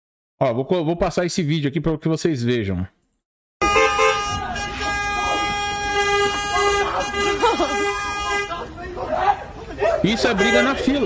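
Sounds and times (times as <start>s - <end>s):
car horn blast: 3.6s - 8.6s, 10.3s - 11.0s
people's voices: 3.6s - 11.0s.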